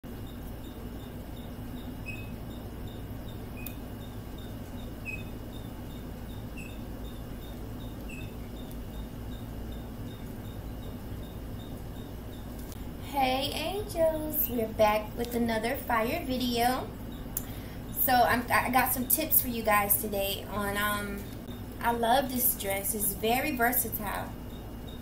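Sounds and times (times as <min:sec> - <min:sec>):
steady low hum: 0:00.0 - 0:25.0
louder lower chirp: 0:00.2 - 0:08.7
faint high chirps: 0:00.2 - 0:12.5.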